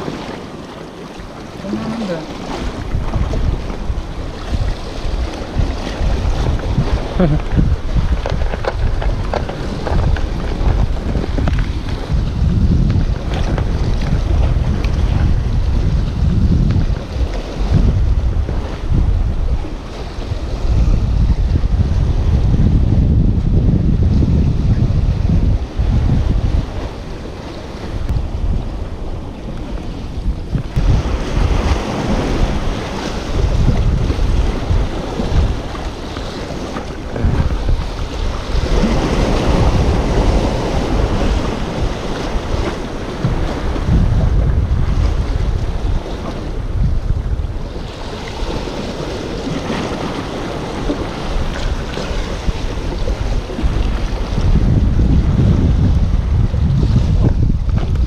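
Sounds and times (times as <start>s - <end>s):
sea waves washing against rocks: 0.0s - 58.0s
wind buffeting microphone: 0.0s - 58.0s.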